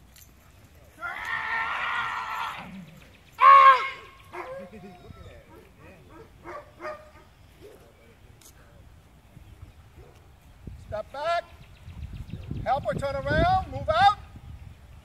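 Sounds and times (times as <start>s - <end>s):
person yelling: 3.4s - 4.2s.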